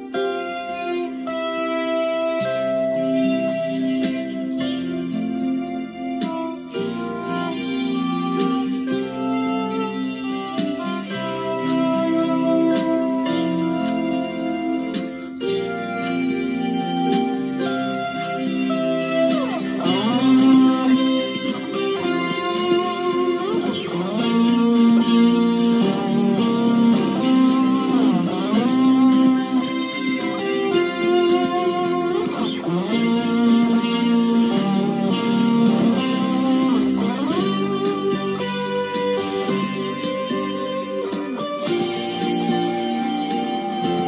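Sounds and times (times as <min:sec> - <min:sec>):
backing track with beat: 0:00.0 - 0:44.0
electric guitar lead: 0:00.0 - 0:44.0.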